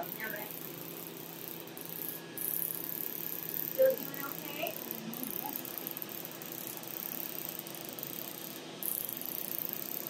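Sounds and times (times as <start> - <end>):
faint machine hum: 0.0 - 10.0.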